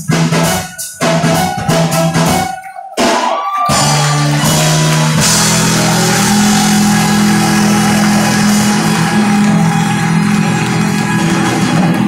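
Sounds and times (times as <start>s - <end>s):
loud live rock band: 0.0s - 12.0s.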